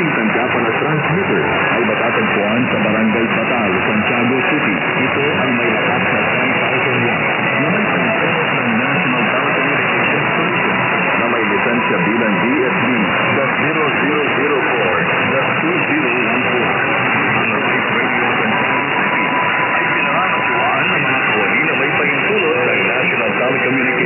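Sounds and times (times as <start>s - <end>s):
faint radio voice: 0.0s - 24.0s
heavy radio noise: 0.0s - 24.0s.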